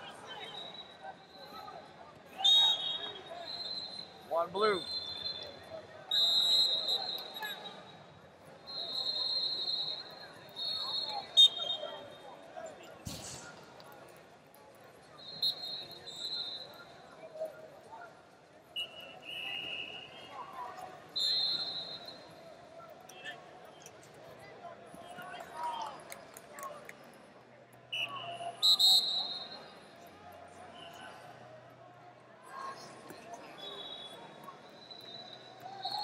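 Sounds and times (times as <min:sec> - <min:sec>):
murmur of voices: 0:00.0 - 0:36.0
referee whistles blowing: 0:00.3 - 0:01.6, 0:02.3 - 0:08.0, 0:08.6 - 0:12.2, 0:15.2 - 0:17.0, 0:18.8 - 0:20.4, 0:21.1 - 0:22.4, 0:27.9 - 0:29.9, 0:33.4 - 0:36.0.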